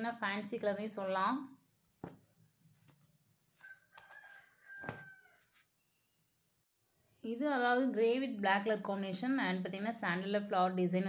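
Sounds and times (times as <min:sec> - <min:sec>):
soft knock: 0:02.0 - 0:02.2
rooster crowing faintly: 0:03.5 - 0:05.8.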